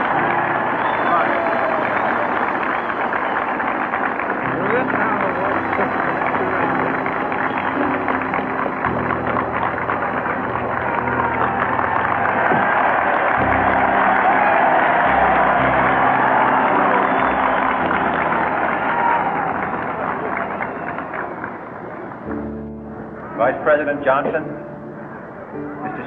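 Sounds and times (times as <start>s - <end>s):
crowd cheering and applauding: 0.0s - 26.0s
music of long held chords: 0.0s - 26.0s.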